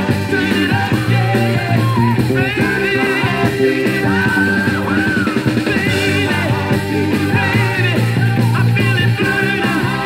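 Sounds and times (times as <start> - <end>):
uptempo soul record playing: 0.0 - 10.0.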